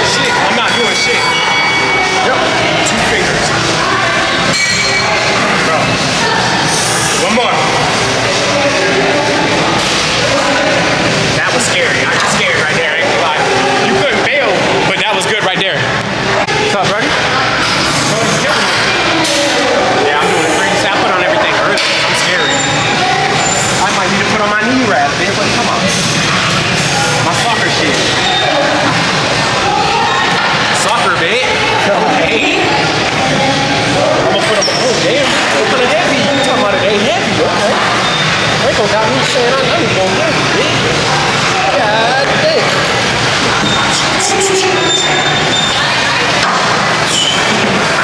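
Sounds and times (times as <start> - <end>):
indistinct voices: 0.0 - 48.0
loud background noise: 0.0 - 48.0.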